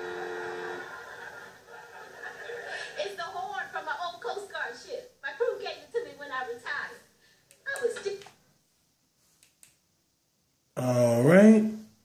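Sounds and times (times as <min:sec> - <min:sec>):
tv dialogue: 0:00.0 - 0:12.0.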